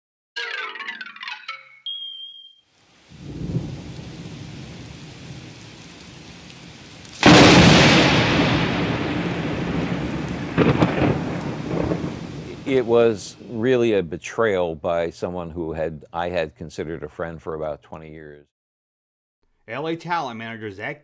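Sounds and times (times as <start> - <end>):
short high tone: 0.4 - 2.6
steady rain: 2.8 - 13.9
thunder rumbling: 3.1 - 13.8
loud thunderclap: 3.2 - 6.4, 7.2 - 13.2.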